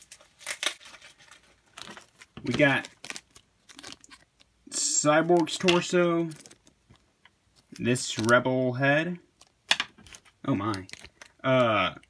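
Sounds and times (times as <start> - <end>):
plastic bag crinkling: 0.0 - 8.5, 9.3 - 11.7.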